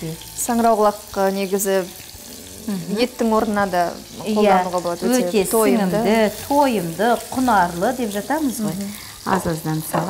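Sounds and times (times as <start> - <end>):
vegetables sizzling in a pan: 0.0 - 10.0
woman talking: 2.7 - 10.0.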